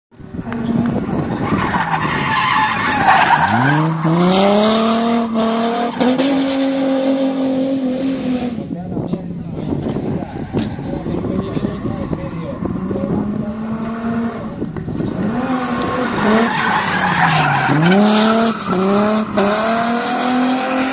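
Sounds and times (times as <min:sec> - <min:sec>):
car engine revving hard: 0:03.4 - 0:08.6, 0:11.6 - 0:20.9.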